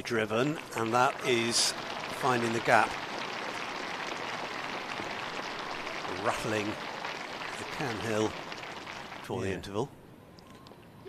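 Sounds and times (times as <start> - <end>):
crowd applause: 0.0 - 9.8.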